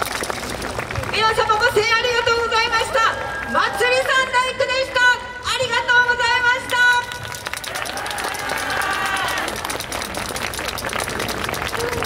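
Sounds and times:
audience clapping: 0.0 - 1.5, 7.1 - 12.0.

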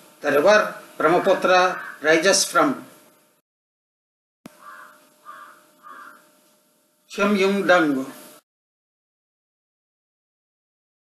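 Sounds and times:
faint room hiss: 0.0 - 3.4
steady hum: 0.0 - 3.4, 4.5 - 8.4
crow cawing: 1.1 - 2.1, 4.5 - 6.3.

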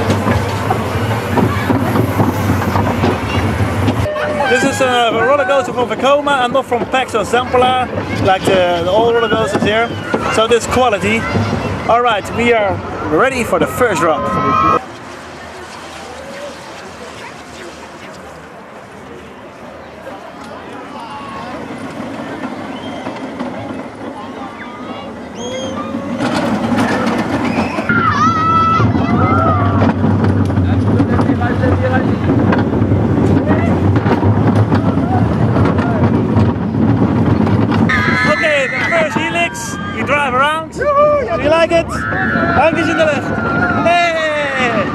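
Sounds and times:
roller coaster rumbling on track: 0.0 - 44.9
wind: 0.0 - 44.9
riders shouting: 37.9 - 44.9.

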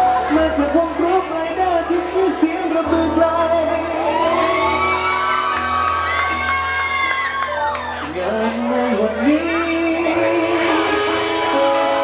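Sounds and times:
person whooping: 4.0 - 8.1.

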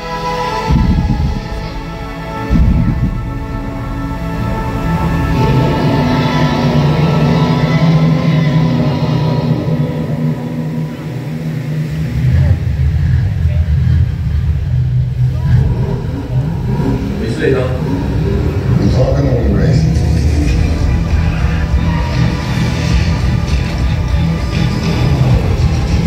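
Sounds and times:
music over loudspeakers: 0.0 - 14.4, 15.2 - 26.0
deep low rumble: 0.0 - 26.0
film dialogue over loudspeakers: 0.0 - 26.0.

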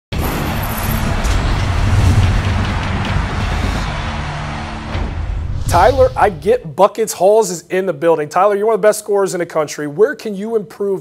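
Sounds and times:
intro music: 0.2 - 6.6
rumbling bass whoosh: 0.2 - 6.6.

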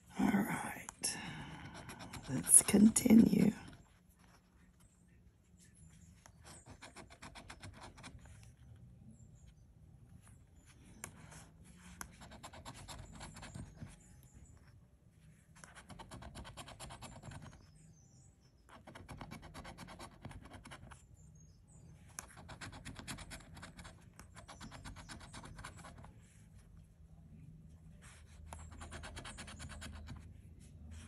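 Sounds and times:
scratching lottery ticket coating: 1.0 - 9.5, 10.1 - 14.6, 15.4 - 18.0, 18.6 - 21.2, 21.9 - 26.9, 27.8 - 31.0.

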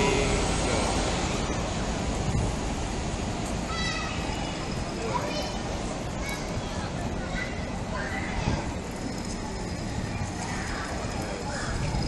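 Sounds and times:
distant traffic rumble: 0.0 - 12.0
wind on microphone: 2.0 - 2.9, 8.2 - 12.0.

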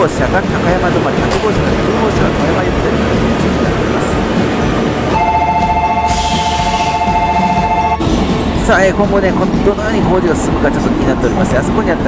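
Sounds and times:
low rumble of standing train: 0.0 - 12.0
two-note electronic departure bell: 5.1 - 8.1.

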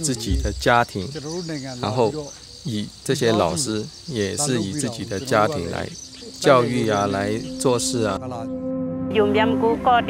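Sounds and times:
man speaking: 0.0 - 8.5
crickets chirring: 0.0 - 8.6.

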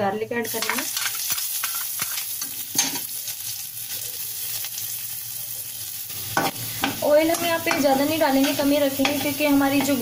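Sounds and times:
garlic sizzling in hot oil: 0.2 - 10.0.

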